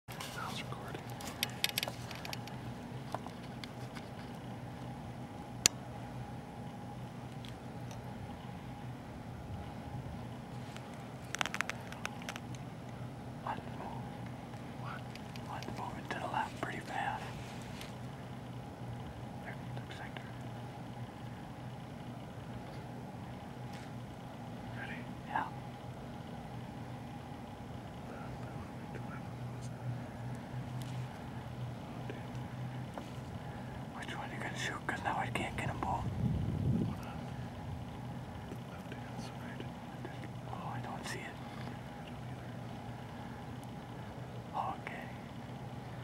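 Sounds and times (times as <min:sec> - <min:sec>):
steady low hum: 0:00.1 - 0:46.0
sharp clicks: 0:10.8 - 0:12.6.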